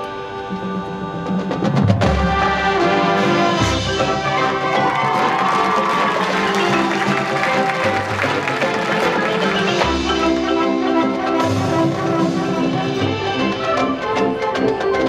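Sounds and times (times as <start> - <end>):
marching band playing: 0.0 - 15.0.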